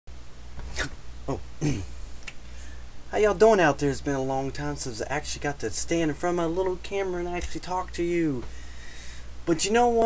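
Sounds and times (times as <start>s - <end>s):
steady low hum: 0.1s - 10.0s
man grunting: 1.3s - 1.9s.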